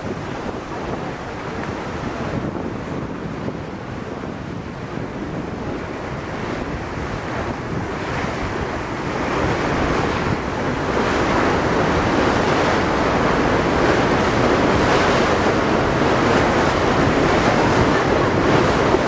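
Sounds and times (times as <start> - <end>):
water churning in a wake: 0.0 - 19.0
wind buffeting microphone: 0.0 - 19.0.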